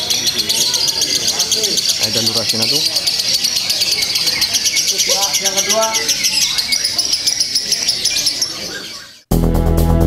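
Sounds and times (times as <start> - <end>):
lovebird chattering trill: 0.0 - 9.2.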